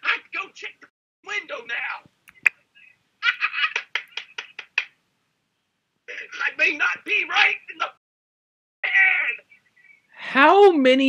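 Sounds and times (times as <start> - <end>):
man laughing: 3.2 - 4.8, 6.1 - 6.8.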